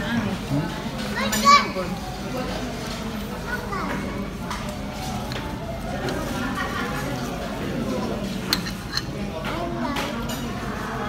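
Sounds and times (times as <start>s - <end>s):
voices chattering: 0.0s - 11.0s.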